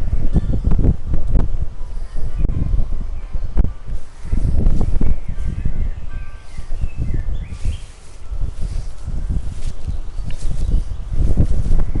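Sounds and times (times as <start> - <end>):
microphone handling noise: 0.0 - 12.0
wind rumbling on microphone: 0.0 - 12.0
bird chirps: 4.2 - 11.3.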